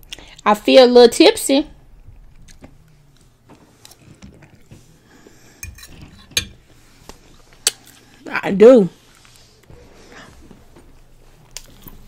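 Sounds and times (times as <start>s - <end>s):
faint chewing: 2.0s - 6.2s, 9.1s - 12.0s.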